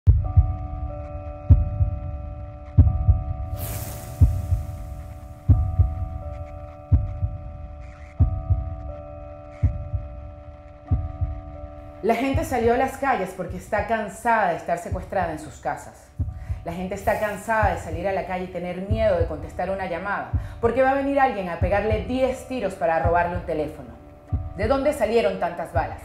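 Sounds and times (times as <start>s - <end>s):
low double thump: 2.8s - 6.3s
hissing whoosh: 3.5s - 5.6s.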